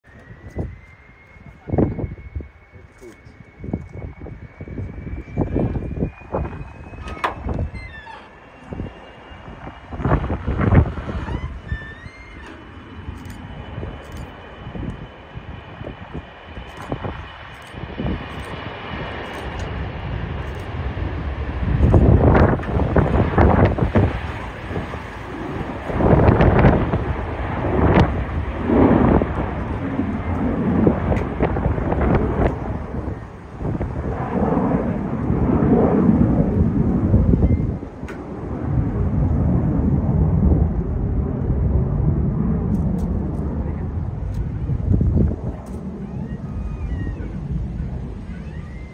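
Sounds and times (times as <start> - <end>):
high jet whine: 0.0 - 48.9
jet engines at takeoff: 0.0 - 48.9
wind rumbling on microphone: 0.0 - 48.9.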